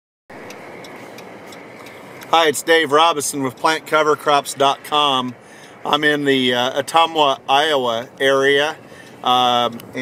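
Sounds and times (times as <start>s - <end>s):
road and engine noise in cabin: 0.3s - 10.0s
faint ticks: 0.4s - 2.5s.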